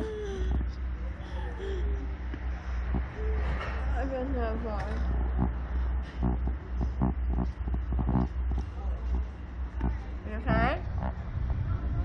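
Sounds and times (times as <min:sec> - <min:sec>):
muffled talking and laughing: 0:00.0 - 0:12.0
steady low rumble: 0:00.0 - 0:12.0.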